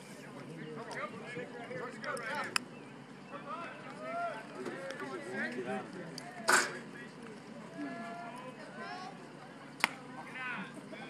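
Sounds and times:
spectators shouting: 0:01.1 - 0:11.0.

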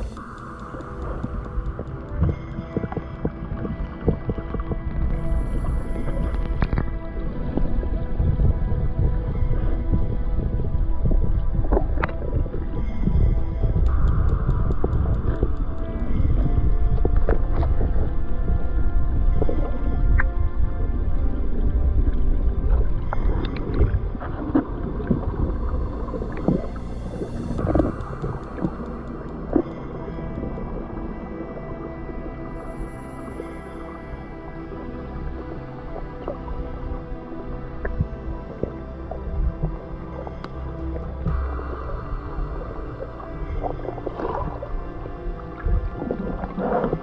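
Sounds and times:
low underwater rumble: 0:00.0 - 0:47.0
steady hum with tones: 0:00.0 - 0:47.0.

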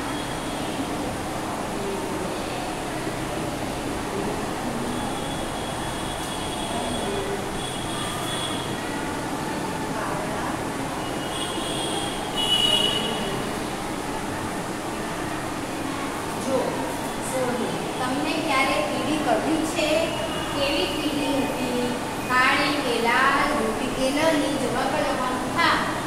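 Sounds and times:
steady background noise: 0:00.0 - 0:26.0.

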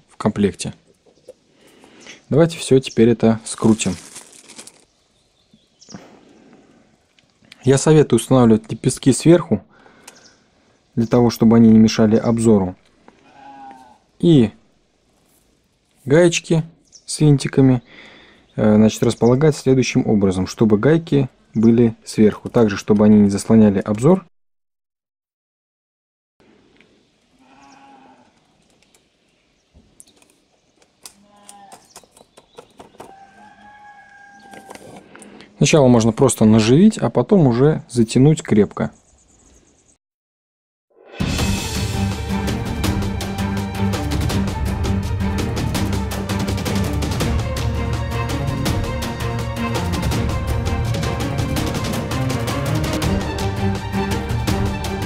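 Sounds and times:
plastic bag crinkling: 0:03.4 - 0:05.0
faint pitched calls: 0:13.2 - 0:14.1, 0:27.3 - 0:28.6, 0:31.1 - 0:35.0.

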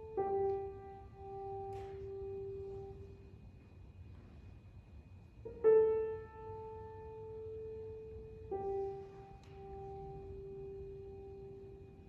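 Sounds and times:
grand piano note: 0:00.0 - 0:03.2
faint low hall hum: 0:00.0 - 0:12.0.

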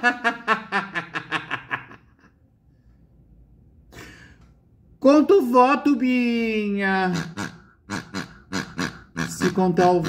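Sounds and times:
man laughing hard: 0:00.0 - 0:02.3.

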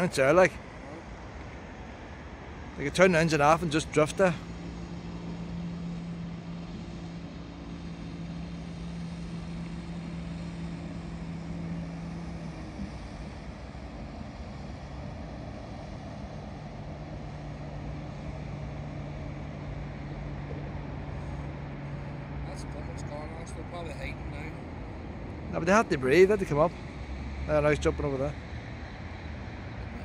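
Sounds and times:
outboard engine droning: 0:00.0 - 0:30.0.

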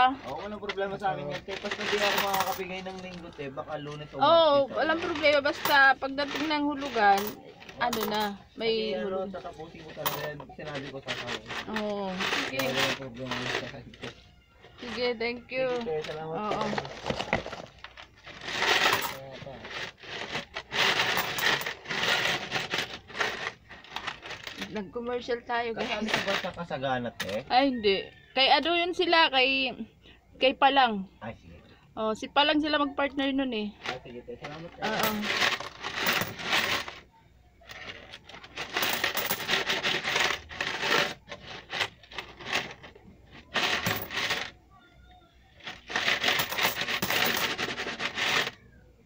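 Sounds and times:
coins rattling in plastic piggy bank: 0:00.0 - 0:04.0, 0:04.7 - 0:08.4, 0:09.7 - 0:14.2, 0:14.8 - 0:24.8, 0:25.8 - 0:27.5, 0:33.8 - 0:37.0, 0:37.6 - 0:44.6, 0:45.6 - 0:48.6.

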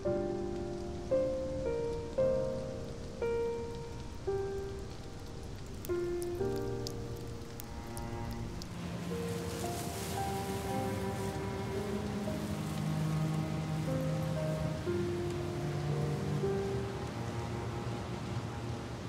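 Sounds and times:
light rain falling: 0:00.0 - 0:19.0
slow piano music: 0:00.0 - 0:19.0.

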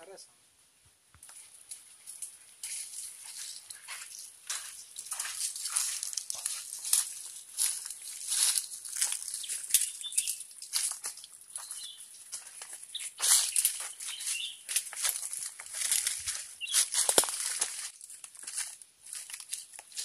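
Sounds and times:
footsteps crunching through dry leaves: 0:01.2 - 0:20.0.

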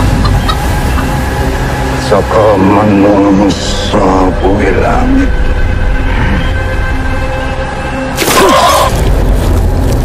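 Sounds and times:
low rumbling drone music: 0:00.0 - 0:10.0.

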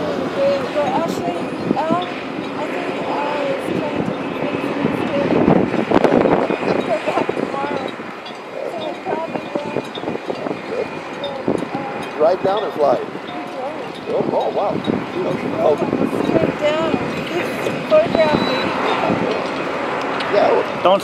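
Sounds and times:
indistinct voices talking: 0:00.0 - 0:21.0
outdoor background noise: 0:00.0 - 0:21.0
rushing swell: 0:00.0 - 0:21.0.

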